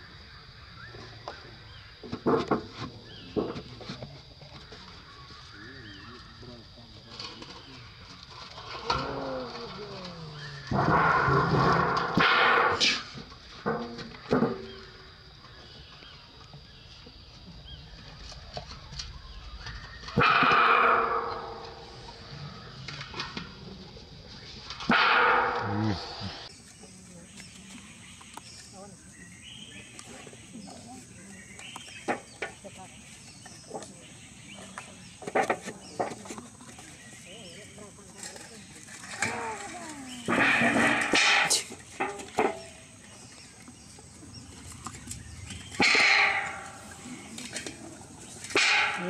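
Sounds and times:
metal basin banging and ringing: 10.7 - 13.0, 20.1 - 22.1, 24.9 - 26.4, 40.3 - 42.8, 45.7 - 47.6, 48.4 - 49.0.

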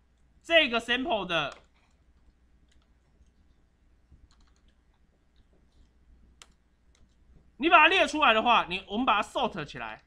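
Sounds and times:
computer keyboard key clicks: 4.3 - 4.8.

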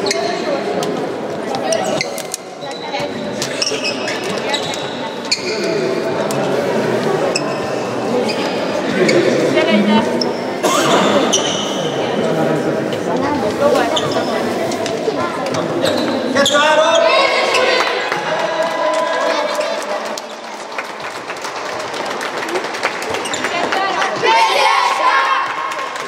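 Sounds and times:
children chattering and calling out: 0.0 - 20.7, 23.1 - 25.8.

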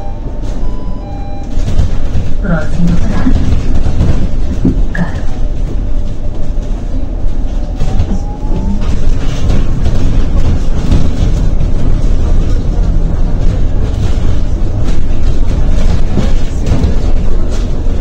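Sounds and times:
bus cabin rumble: 0.0 - 18.0.

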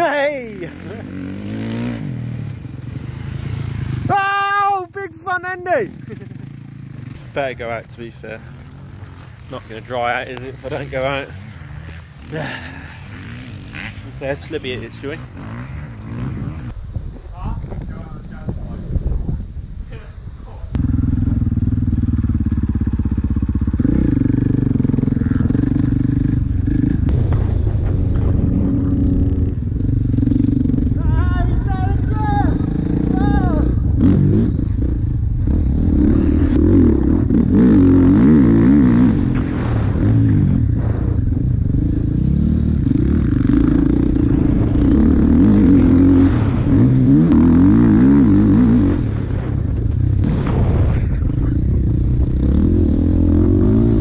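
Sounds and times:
dirt bike engine revving: 0.0 - 4.4, 5.1 - 16.8, 20.8 - 27.2, 28.2 - 50.4, 51.6 - 54.0.

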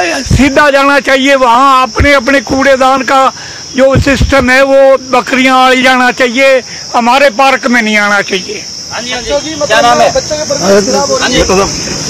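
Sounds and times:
high-pitched insect buzz: 0.0 - 12.0
voices talking: 0.0 - 12.0.

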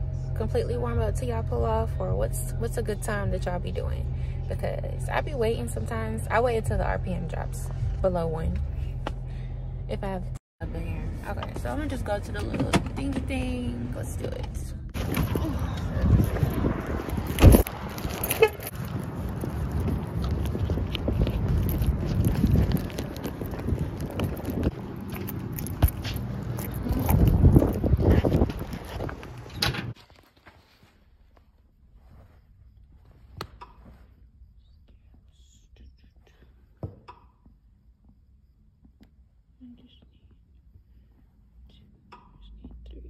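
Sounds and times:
outdoor rumble: 0.0 - 30.0.

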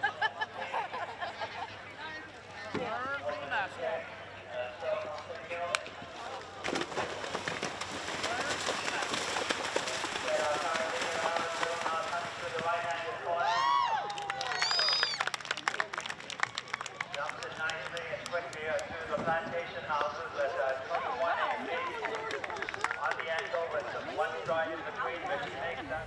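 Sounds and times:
hooves splashing in water: 6.1 - 13.1.

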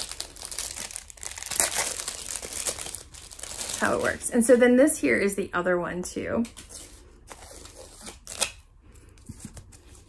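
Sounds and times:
plastic-coated canvas rustling: 0.0 - 4.3.

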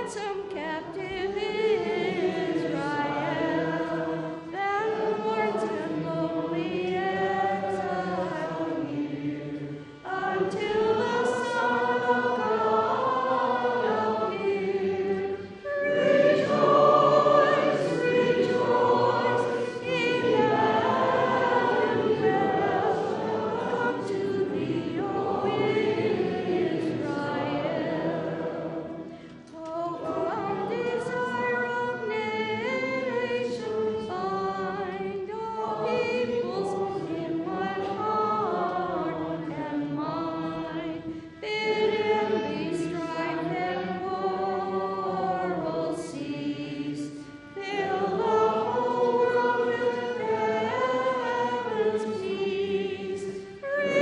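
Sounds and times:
congregation singing a hymn: 0.0 - 54.0
singers breathing: 29.1 - 29.5.

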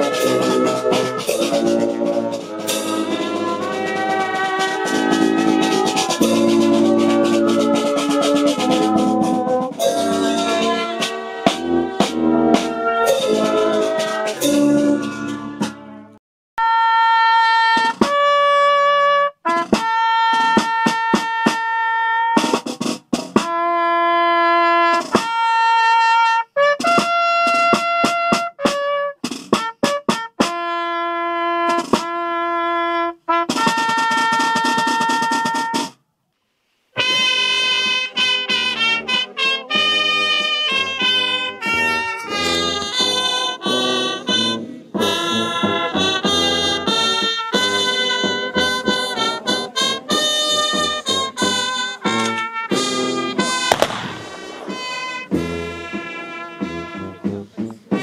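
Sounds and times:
brass ensemble music: 0.0 - 36.0, 37.0 - 58.0
solo trumpet melody: 0.0 - 36.0, 37.0 - 58.0.

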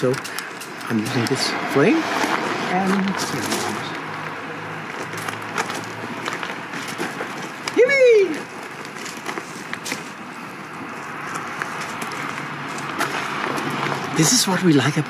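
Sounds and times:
fire hissing and clicking: 0.0 - 1.4
man exclaiming: 7.7 - 8.5.

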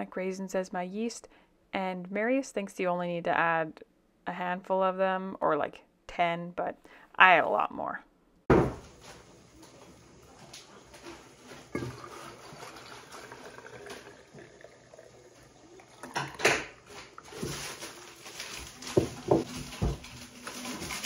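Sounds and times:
tea pouring into glass jar: 11.7 - 18.0.

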